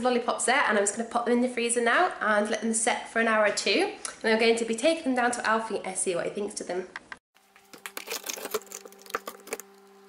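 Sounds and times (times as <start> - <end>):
freezer humming: 7.4 - 10.0.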